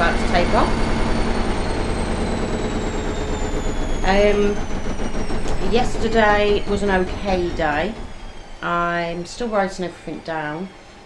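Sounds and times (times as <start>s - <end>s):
washing machine spinning: 0.0s - 11.0s.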